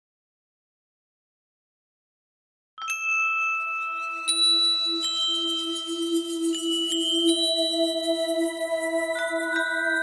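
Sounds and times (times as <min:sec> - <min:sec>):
bell-like chime notes: 0:02.8 - 0:10.0
low wavering drone: 0:04.0 - 0:10.0.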